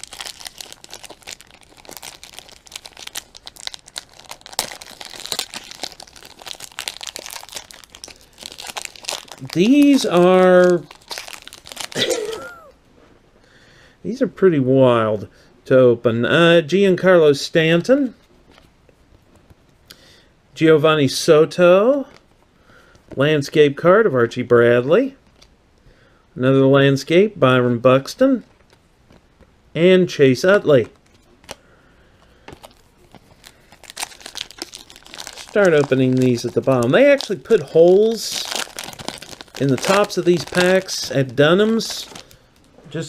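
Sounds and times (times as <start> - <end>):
wrapper crinkling and tearing: 0.0 - 12.7, 32.5 - 42.8.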